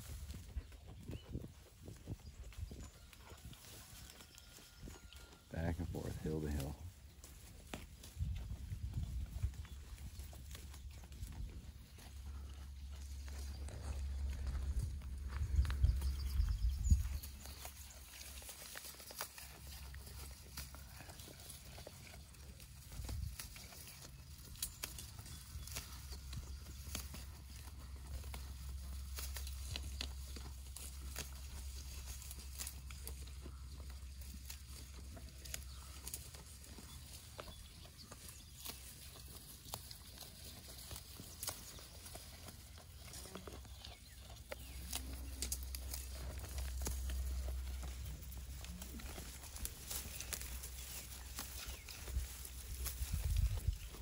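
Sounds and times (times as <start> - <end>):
tall grass rustling: 0.0 - 2.7, 3.3 - 54.0
goats chewing grass: 0.0 - 54.0
low rumble: 8.2 - 18.2.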